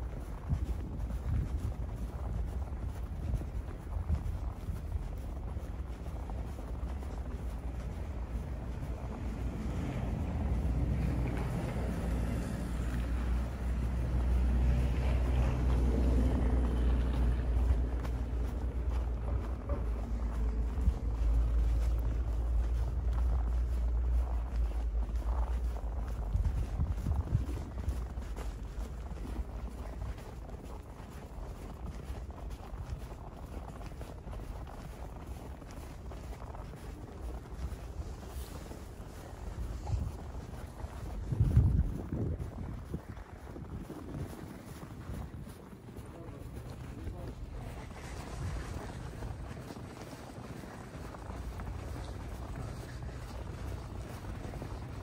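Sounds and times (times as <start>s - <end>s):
vehicle engine rumble: 0.0s - 55.0s
wind on microphone: 0.0s - 55.0s.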